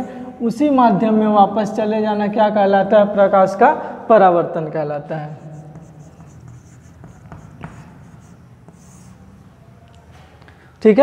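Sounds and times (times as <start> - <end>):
chalk scratching on chalkboard: 5.2 - 9.4.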